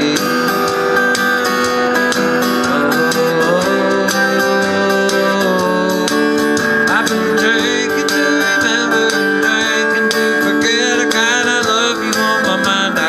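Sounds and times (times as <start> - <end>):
acoustic guitar strumming: 0.0 - 13.0
percussion hits: 0.0 - 13.0.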